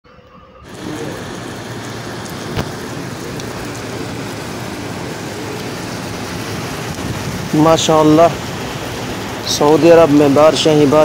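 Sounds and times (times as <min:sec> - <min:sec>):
heavy rain on pavement: 0:00.6 - 0:11.0.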